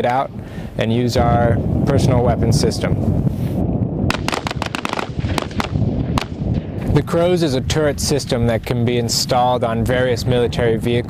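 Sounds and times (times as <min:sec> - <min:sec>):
rifle shots: 0:04.1 - 0:06.8.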